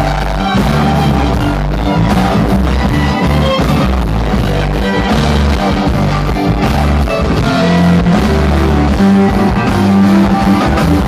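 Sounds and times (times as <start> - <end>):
bass: 0.0 - 11.0
drums: 0.0 - 11.0
fiddle: 0.0 - 11.0
guitar: 0.0 - 11.0.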